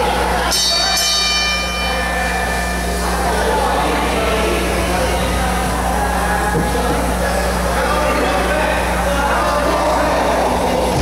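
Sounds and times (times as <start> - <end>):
ring bell ringing: 0.0 - 5.6.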